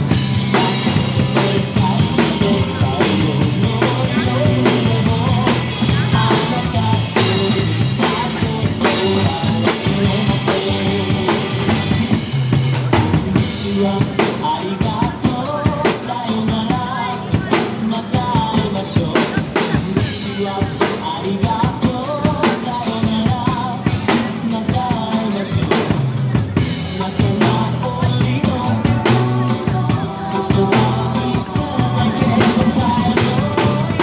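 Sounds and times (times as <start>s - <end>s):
backing music with bass line: 0.0s - 34.0s.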